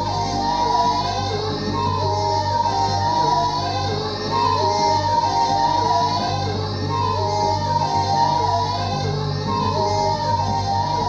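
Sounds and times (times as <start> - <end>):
electric bass line: 0.0 - 11.0
high yodel-like singing: 0.0 - 11.0.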